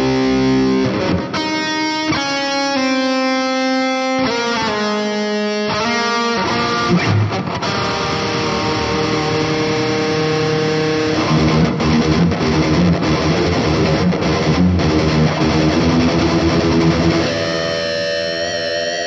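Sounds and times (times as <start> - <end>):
electric guitar melody: 0.0 - 19.0.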